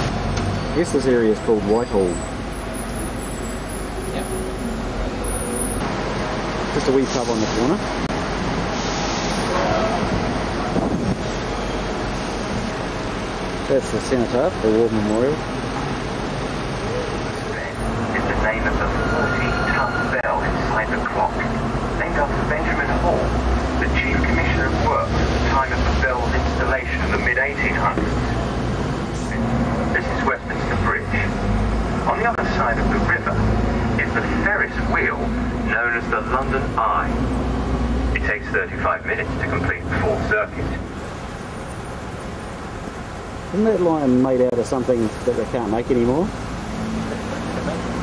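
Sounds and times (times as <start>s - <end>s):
bus rumbling on road: 0.0s - 48.0s
indistinct voices: 16.7s - 37.3s, 38.1s - 41.0s.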